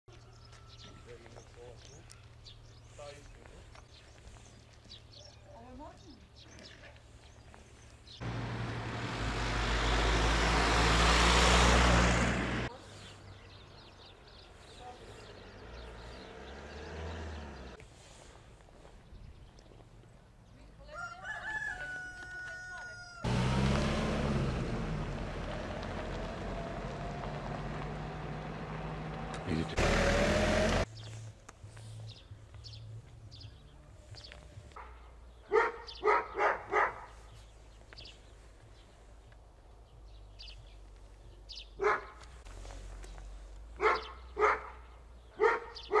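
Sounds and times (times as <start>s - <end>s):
rooster crowing: 0.2s - 1.1s, 20.9s - 23.4s
dog barking: 34.8s - 37.2s, 41.8s - 42.2s, 43.8s - 46.0s.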